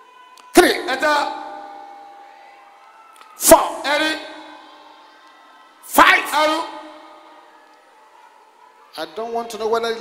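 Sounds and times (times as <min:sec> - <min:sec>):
shouting over public address: 0:00.0 - 0:10.0.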